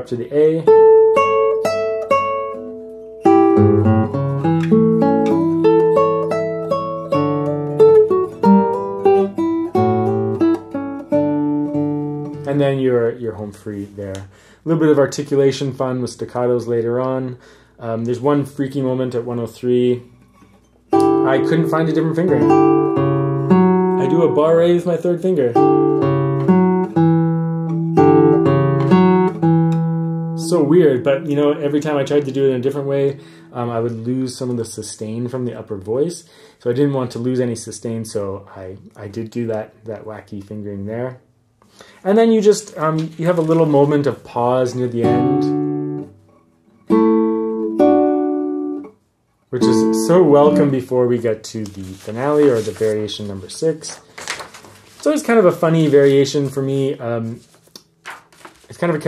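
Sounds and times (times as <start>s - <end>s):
fingerpicked classical guitar: 0.6s - 12.7s, 20.0s - 34.0s, 42.6s - 52.8s.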